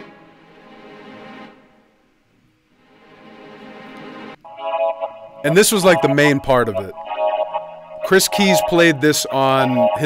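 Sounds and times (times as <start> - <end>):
string pad chords: 2.8 - 10.0.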